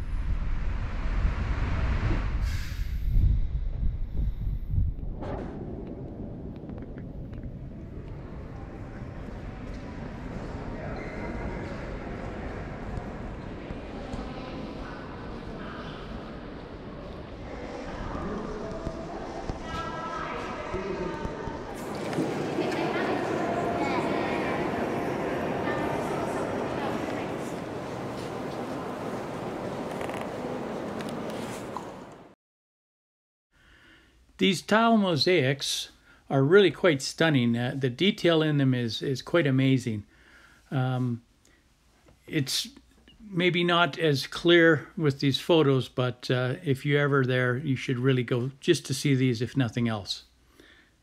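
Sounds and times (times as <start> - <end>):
wind rumbling on microphone: 0.0 - 10.7
distant voices murmuring: 7.6 - 32.3.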